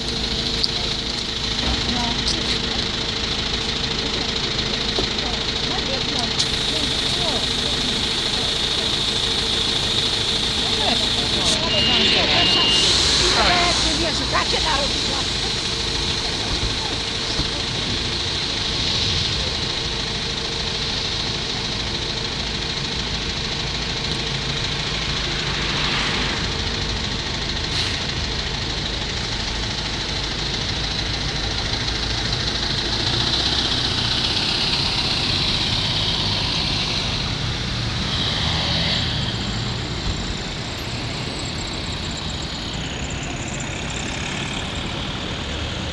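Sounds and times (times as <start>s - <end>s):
bus engines idling: 0.0s - 45.9s
street traffic: 0.0s - 45.9s.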